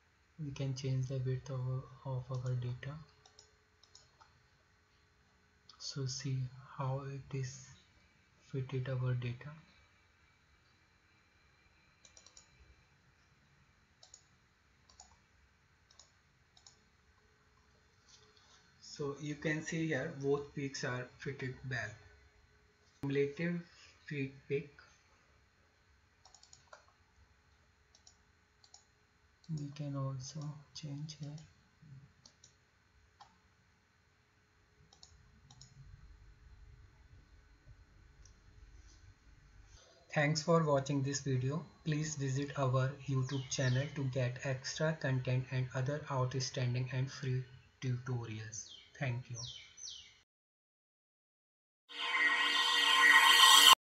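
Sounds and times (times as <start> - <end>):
faint computer mouse clicks: 3.2 - 4.3, 12.0 - 12.6, 14.0 - 14.3, 14.9 - 15.2, 15.9 - 16.8, 26.2 - 27.0, 27.9 - 29.7, 34.9 - 35.8.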